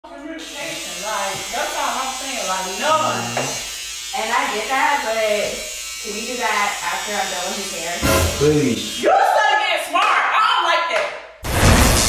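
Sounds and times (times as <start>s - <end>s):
electric hair clippers buzzing: 0.2s - 9.0s
person talking: 2.8s - 3.6s, 8.0s - 8.9s.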